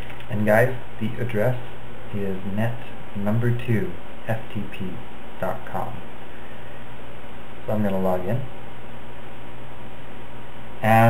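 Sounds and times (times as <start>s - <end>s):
background hiss: 0.0s - 11.0s
man speaking: 0.3s - 6.1s, 7.6s - 8.6s, 10.8s - 11.0s.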